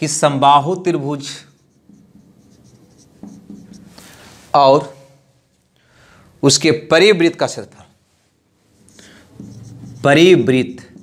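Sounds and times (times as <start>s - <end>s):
marker scratching on whiteboard: 1.2s - 4.2s, 8.8s - 11.0s.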